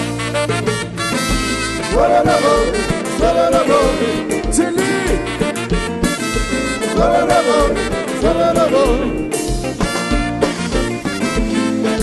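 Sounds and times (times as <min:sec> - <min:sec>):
live band music: 0:00.0 - 0:12.0
low bass notes: 0:00.0 - 0:12.0.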